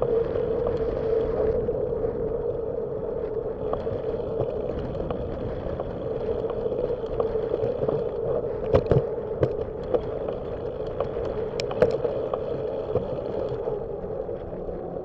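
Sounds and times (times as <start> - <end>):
bicycle rolling on concrete: 0.0 - 15.0
wind noise: 0.0 - 15.0
light clicks: 3.7 - 13.7.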